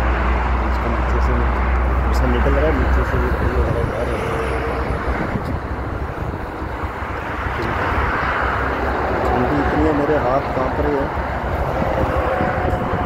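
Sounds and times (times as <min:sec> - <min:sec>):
highway traffic rushing: 0:00.0 - 0:13.0
low rumble: 0:00.0 - 0:13.0.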